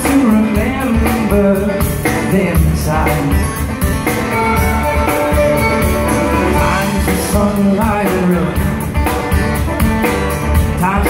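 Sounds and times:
drum kit steady beat: 0.0s - 11.0s
strummed acoustic guitar: 0.1s - 11.0s
fiddle playing: 3.8s - 7.7s.

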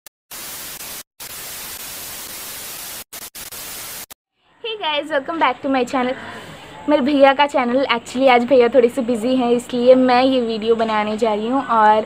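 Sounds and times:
steady static hiss: 0.3s - 4.1s.

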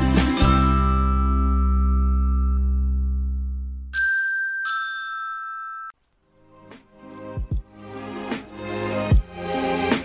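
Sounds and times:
bright chime notes: 0.3s - 6.0s.

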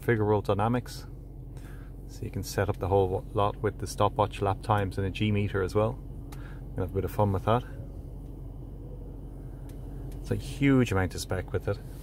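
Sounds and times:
car cabin hum: 0.0s - 12.0s.

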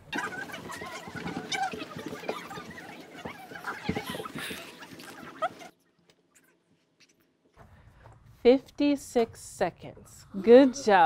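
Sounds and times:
children's voices: 0.1s - 5.7s.

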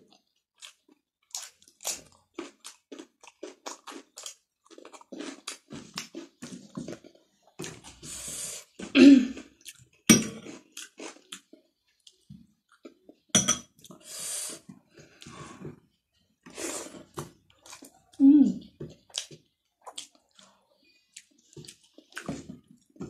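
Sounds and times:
chewing and crunching food: 0.0s - 14.0s, 14.7s - 23.0s.

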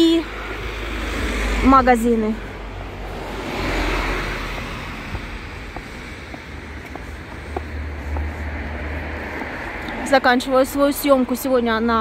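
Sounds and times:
car passing: 0.0s - 12.0s.

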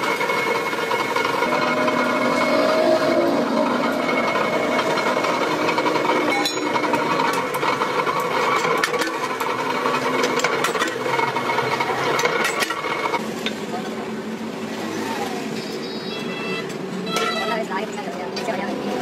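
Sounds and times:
power press motor running: 0.0s - 13.3s.

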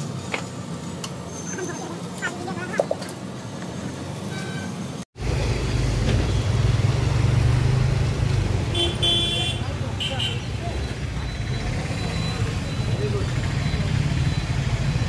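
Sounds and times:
low rumble of vehicles: 0.0s - 15.0s
short vehicle horn toots: 8.7s - 10.4s.

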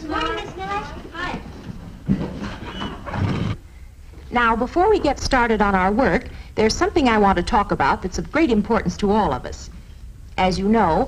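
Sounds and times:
horse whinnying: 2.4s - 3.6s.

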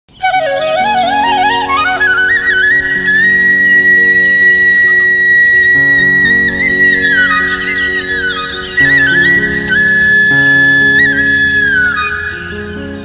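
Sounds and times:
flute melody: 0.1s - 13.0s.

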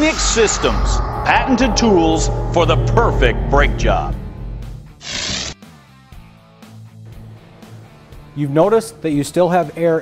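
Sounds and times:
noisy whoosh effect: 0.0s - 5.6s.

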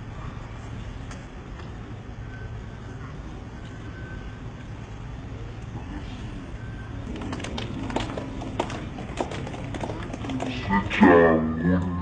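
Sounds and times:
background hubbub: 0.0s - 12.0s.

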